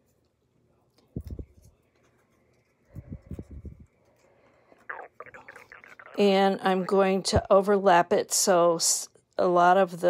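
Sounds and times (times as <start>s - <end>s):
person whispering: 4.8s - 7.1s.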